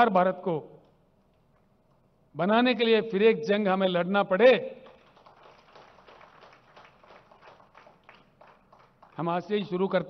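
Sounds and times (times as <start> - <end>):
audience clapping: 4.8 - 9.6.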